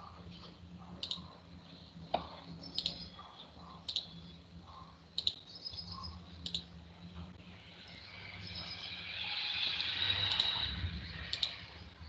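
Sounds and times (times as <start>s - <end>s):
low hum: 0.0s - 12.0s
computer mouse clicks: 1.0s - 1.3s, 2.1s - 3.1s, 3.8s - 4.1s, 4.7s - 5.4s, 6.0s - 6.7s, 9.8s - 10.6s, 11.3s - 11.6s.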